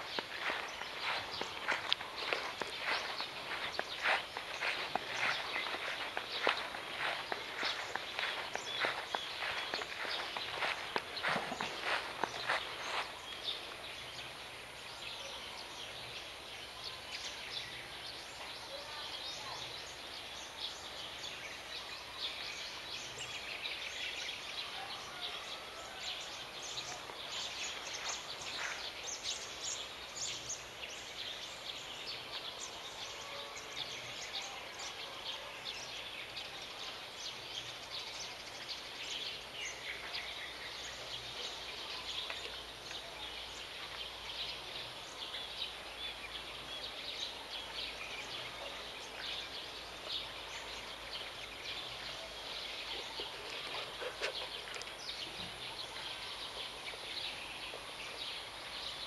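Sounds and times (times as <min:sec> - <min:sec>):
footsteps crunching on dry leaves: 0:00.0 - 0:13.8, 0:26.9 - 0:29.5
outdoor background hiss: 0:00.0 - 0:59.0.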